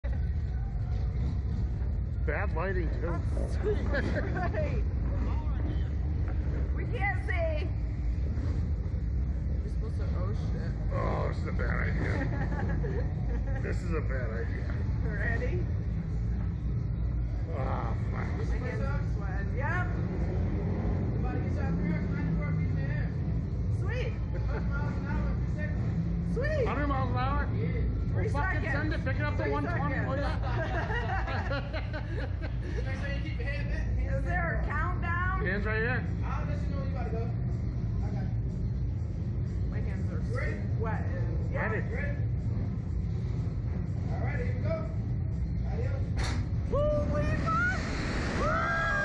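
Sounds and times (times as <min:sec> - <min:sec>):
steady low rumble: 0:00.0 - 0:49.0.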